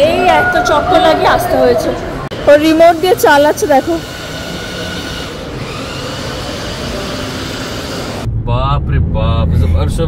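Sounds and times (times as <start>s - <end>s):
shopping mall background hum: 0.0s - 8.3s.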